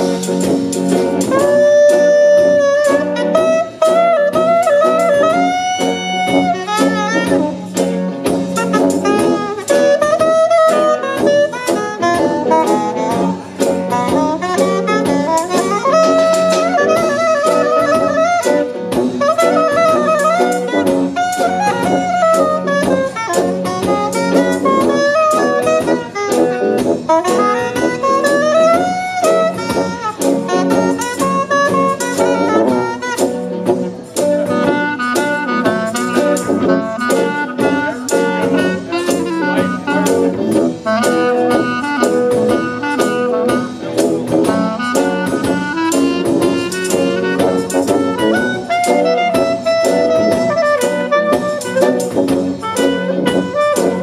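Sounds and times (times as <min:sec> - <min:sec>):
clarinet: 0:00.0 - 0:54.0
jazz band playing: 0:00.0 - 0:54.0
saxophone solo: 0:00.0 - 0:54.0.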